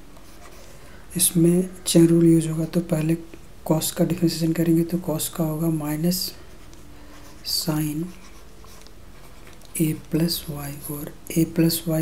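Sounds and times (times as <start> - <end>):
person speaking: 0.2 - 12.0
stylus scratching on writing tablet: 5.8 - 10.4.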